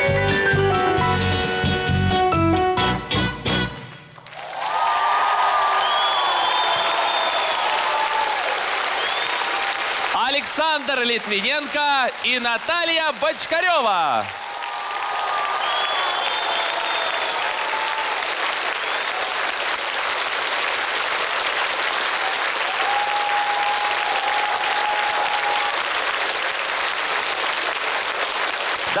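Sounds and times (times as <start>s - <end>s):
audience applauding: 3.9s - 29.0s.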